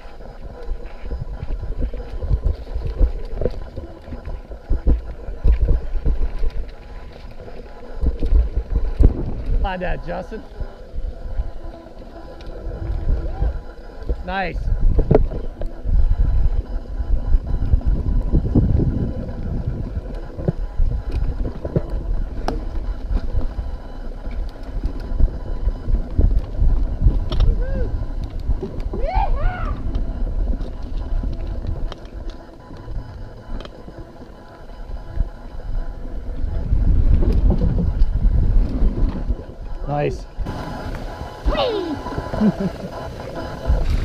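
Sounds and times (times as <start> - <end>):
bike clicks and rattles: 0.0 - 44.0
bike tyres rumbling: 0.0 - 44.0
wind on microphone: 0.0 - 44.0.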